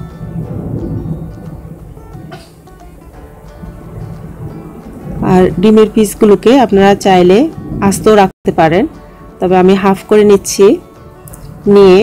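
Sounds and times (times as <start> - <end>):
soft music: 0.0 - 12.0.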